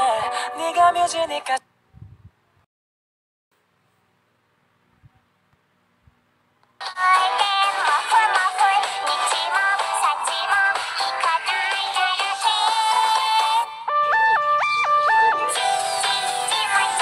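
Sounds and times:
music with sung melody: 0.0s - 1.6s, 6.8s - 17.0s.

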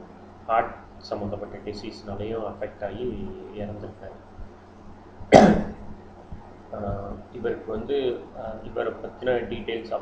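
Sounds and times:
man coughing: 5.3s - 5.8s.

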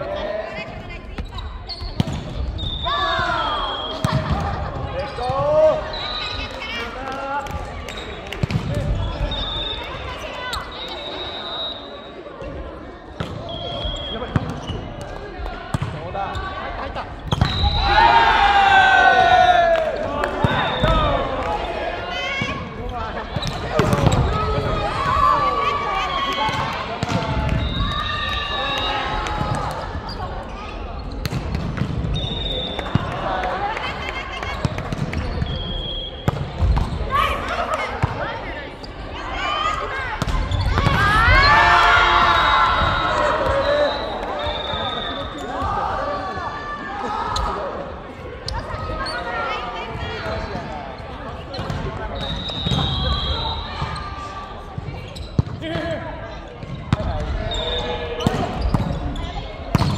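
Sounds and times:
sneakers squeaking on floor: 0.6s - 6.6s, 7.7s - 15.1s, 22.4s - 26.6s, 27.2s - 33.1s, 34.4s - 39.1s, 40.2s - 46.4s, 48.4s - 59.9s.

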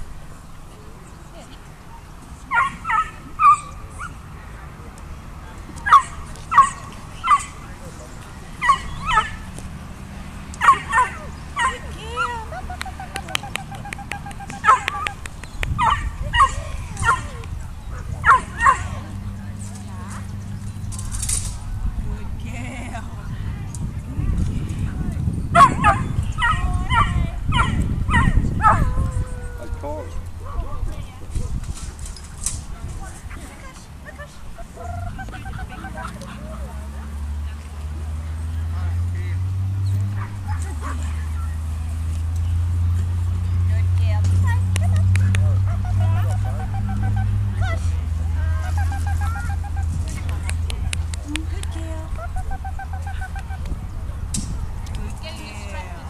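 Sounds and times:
puppy yipping and barking: 2.5s - 4.2s, 5.9s - 7.6s, 8.6s - 9.4s, 10.6s - 15.2s, 15.8s - 17.4s, 18.2s - 18.9s, 25.6s - 28.9s.

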